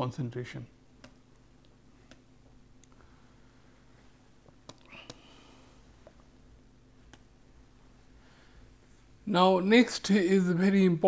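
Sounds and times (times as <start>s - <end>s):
room hum: 0.0s - 11.0s
mouse clicks: 1.0s - 1.2s, 4.6s - 5.2s, 7.0s - 7.3s.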